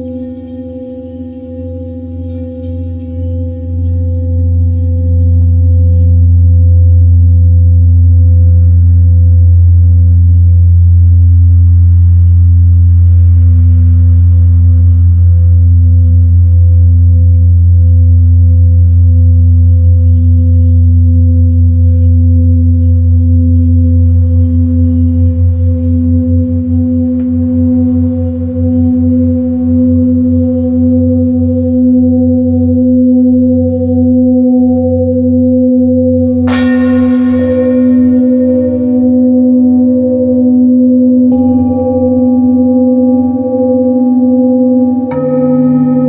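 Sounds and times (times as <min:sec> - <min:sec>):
crickets chirring: 0:00.0 - 0:46.0
singing bowl humming: 0:00.0 - 0:46.0.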